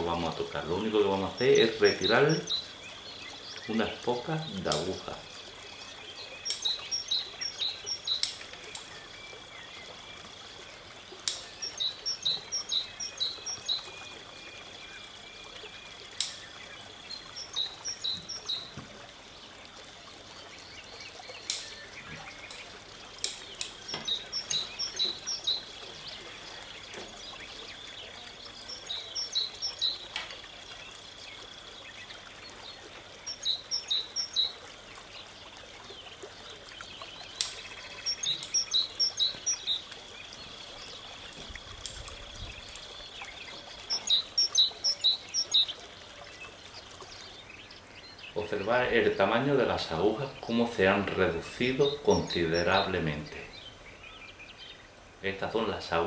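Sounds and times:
songbird chirping: 0.0s - 56.0s.

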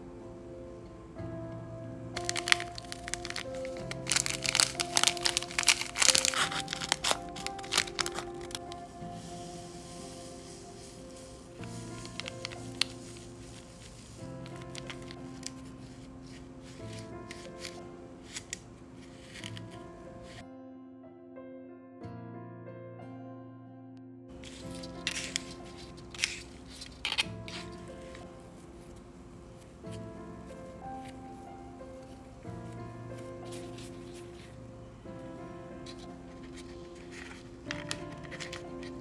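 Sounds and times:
soft piano music: 0.0s - 39.0s
powder poured into plastic tray: 2.2s - 19.8s
plastic film and foil crinkling: 2.2s - 20.4s, 24.3s - 39.0s.

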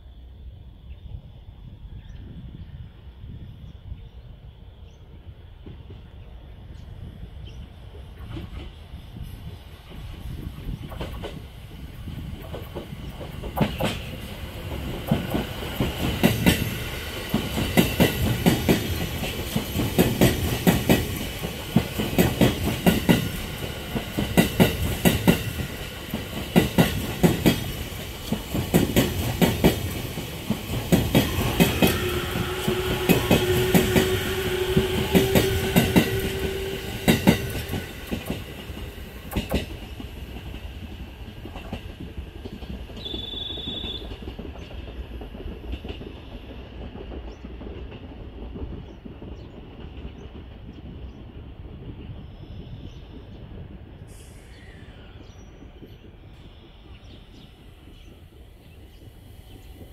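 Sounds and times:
train wheels knocking over rail joints: 9.9s - 50.5s.

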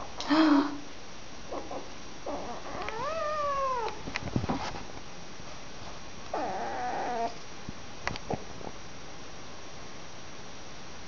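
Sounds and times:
cat meowing: 1.5s - 4.0s.

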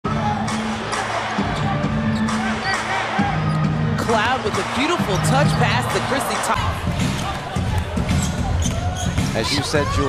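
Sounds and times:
crowd and voices: 0.0s - 10.0s.

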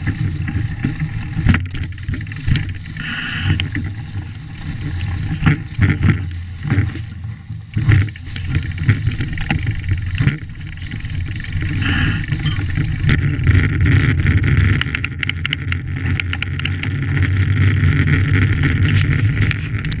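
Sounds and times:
bike knocks and rattles: 0.0s - 20.0s
knobby tyres rushing on pavement: 0.0s - 20.0s
small crackles: 0.0s - 20.0s.

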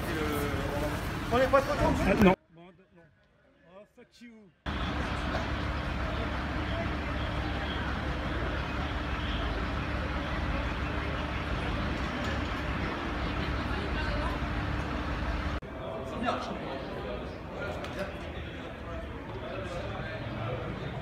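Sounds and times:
idling vehicles humming: 0.0s - 2.4s, 4.7s - 15.6s
low street rumble: 0.0s - 2.4s, 4.7s - 21.0s.

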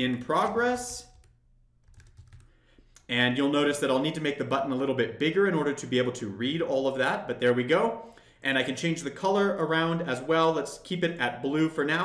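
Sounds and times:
typing on computer keyboard: 0.1s - 2.5s.

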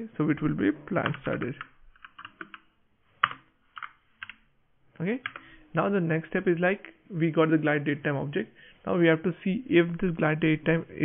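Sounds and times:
computer keyboard typing: 1.0s - 4.4s.

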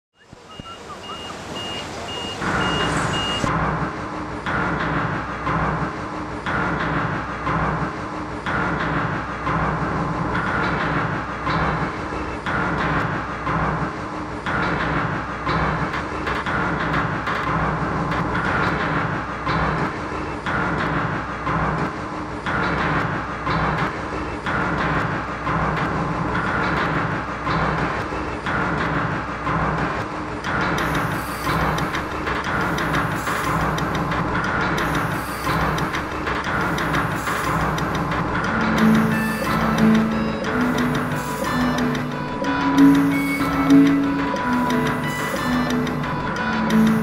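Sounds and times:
backup alarm beeping: 0.2s - 3.5s, 34.8s - 47.0s
heavy machinery running: 0.2s - 47.0s
train-like clickety-clack: 0.2s - 47.0s.

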